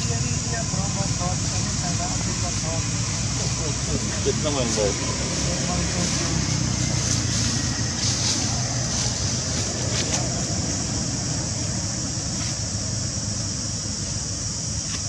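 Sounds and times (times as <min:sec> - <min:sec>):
high hiss: 0:00.0 - 0:15.0.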